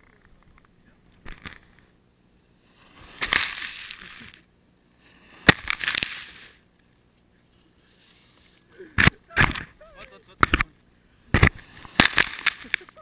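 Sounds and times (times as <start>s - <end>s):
skis scraping snow: 2.6s - 6.6s.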